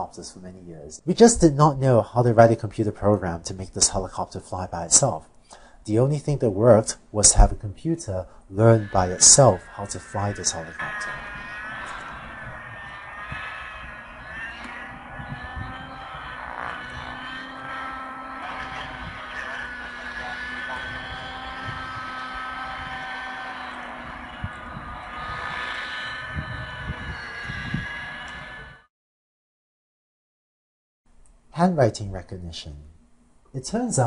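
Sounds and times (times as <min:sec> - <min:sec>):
model helicopter whine: 0:08.7 - 0:28.9.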